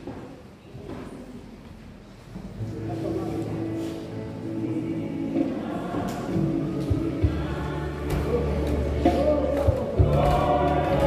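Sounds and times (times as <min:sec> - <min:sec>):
choir singing gospel music: 0:02.6 - 0:11.0.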